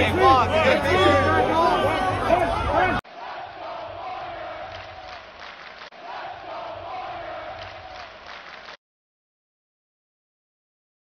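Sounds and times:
crowd yelling and cheering: 0:00.0 - 0:08.8.

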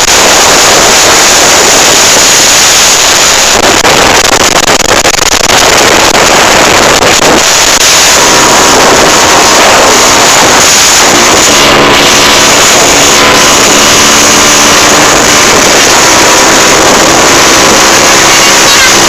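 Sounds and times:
motorcycle engine drone: 0:00.0 - 0:19.0
wind rush on microphone: 0:00.0 - 0:19.0.

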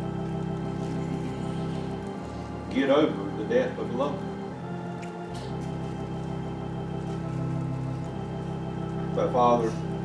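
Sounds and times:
organ playing soft chords: 0:00.0 - 0:10.0.

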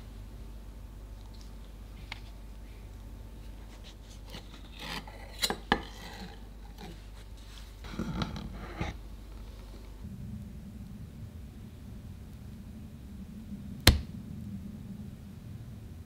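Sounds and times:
metal spatulas scraping: 0:04.2 - 0:07.1.

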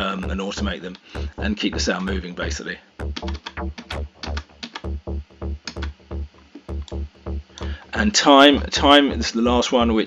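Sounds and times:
kick drum: 0:00.0 - 0:02.3, 0:03.0 - 0:07.9
distorted bass notes: 0:00.0 - 0:10.0
clicky attacks: 0:03.0 - 0:05.0.

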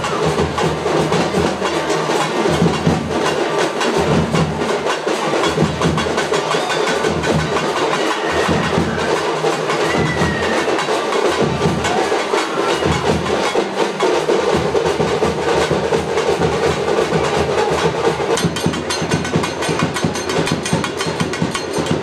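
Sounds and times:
loud music with fast drumming: 0:00.0 - 0:22.0.

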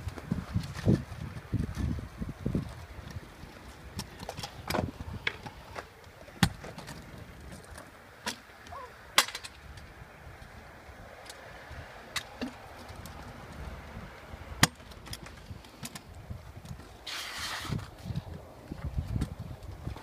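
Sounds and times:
scooter clacking on ground: 0:00.0 - 0:10.6, 0:12.0 - 0:20.0
scooter rolling on concrete: 0:00.0 - 0:20.0.

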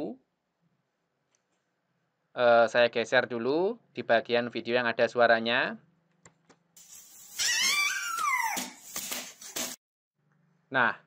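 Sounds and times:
baby squealing: 0:07.1 - 0:09.0.

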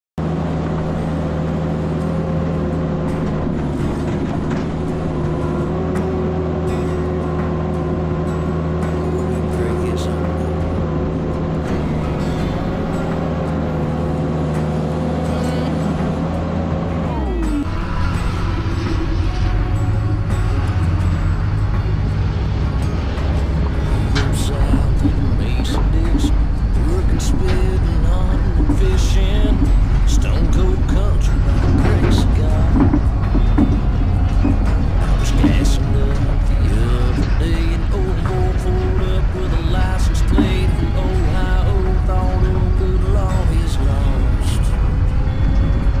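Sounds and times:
skid steer engine running: 0:00.2 - 0:46.0.

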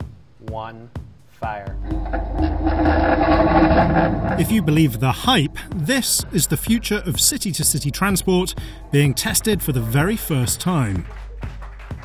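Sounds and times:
deep rumble: 0:01.7 - 0:11.4
loud buzzing drone: 0:01.8 - 0:11.0.

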